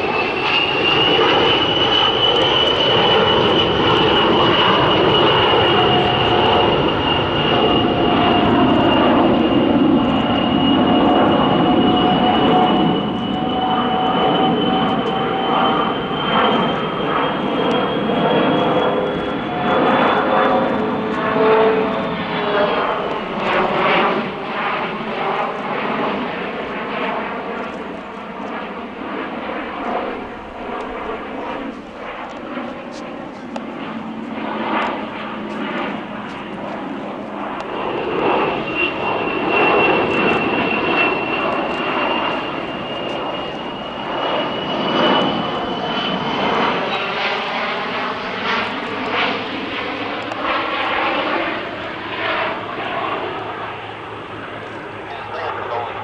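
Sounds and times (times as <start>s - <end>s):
jet engines passing overhead: 0.0s - 56.0s.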